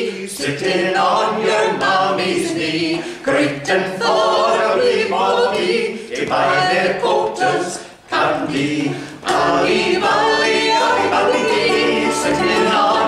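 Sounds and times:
group singing folk song: 0.0s - 13.0s.

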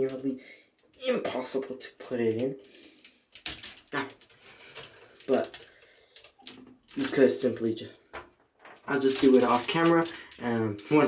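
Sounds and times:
plastic toy parts clicking and scraping: 2.3s - 7.4s, 8.2s - 11.0s.

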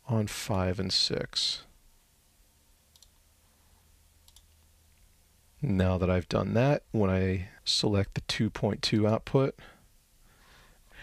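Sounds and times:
computer mouse click: 2.9s - 3.2s, 4.2s - 4.6s.

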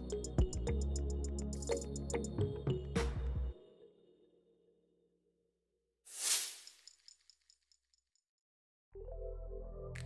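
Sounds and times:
background music: 0.0s - 4.8s, 9.0s - 10.0s.

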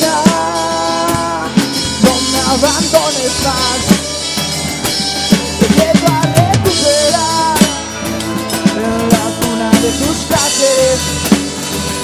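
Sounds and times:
person singing: 0.0s - 4.4s, 5.3s - 11.3s
acoustic guitar: 0.0s - 12.0s
bass drum: 0.0s - 12.0s
violin: 0.0s - 12.0s.

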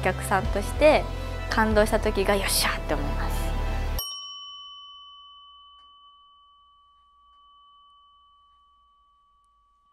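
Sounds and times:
bell-like chime note: 4.0s - 9.9s.

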